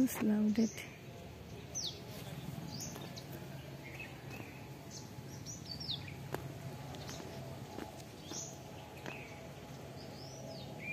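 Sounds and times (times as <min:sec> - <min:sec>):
birds chirping: 0:00.0 - 0:10.9
low background hum: 0:00.0 - 0:10.9.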